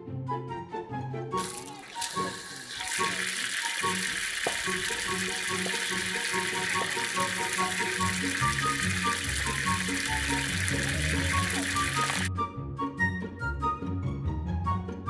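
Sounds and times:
background music: 0.0s - 15.0s
water gushing onto concrete: 1.4s - 12.3s.

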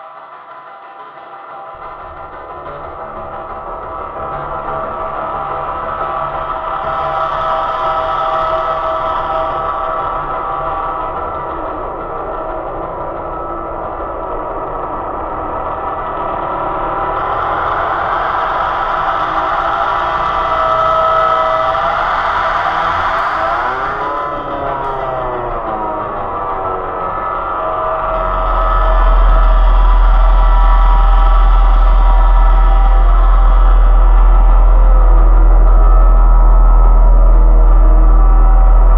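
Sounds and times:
ambient synthesizer music: 1.0s - 38.9s.

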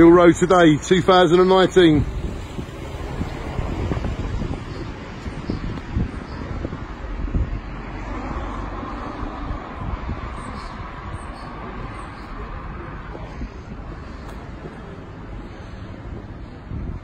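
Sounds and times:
street traffic: 0.0s - 17.0s
wind buffeting microphone: 0.0s - 17.0s.

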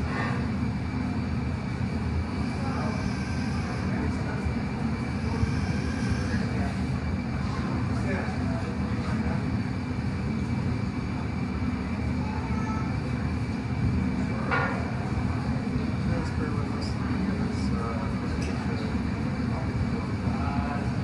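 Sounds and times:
furnace roaring: 0.0s - 21.0s
murmur of voices: 2.2s - 21.0s.

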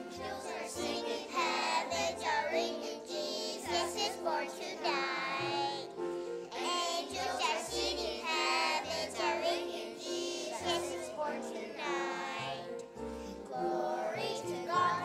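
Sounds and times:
children's choir singing: 0.0s - 15.0s.

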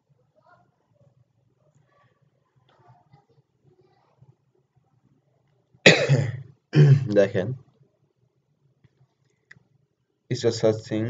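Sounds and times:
person coughing: 5.9s - 7.2s.

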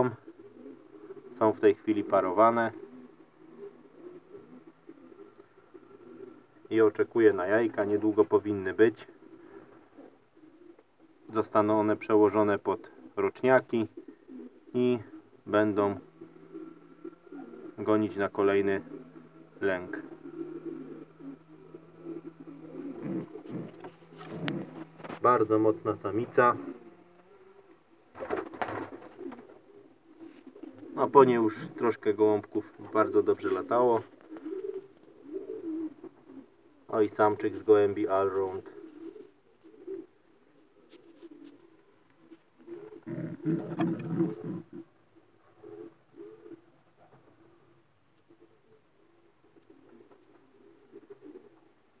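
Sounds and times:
pigeon cooing: 0.0s - 52.0s.

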